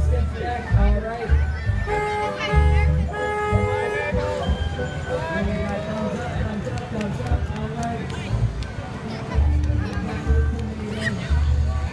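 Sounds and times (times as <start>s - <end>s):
people talking indistinctly: 0.0s - 11.9s.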